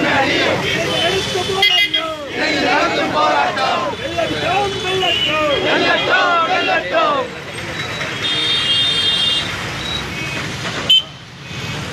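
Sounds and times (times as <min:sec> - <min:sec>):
road traffic: 0:00.0 - 0:11.9.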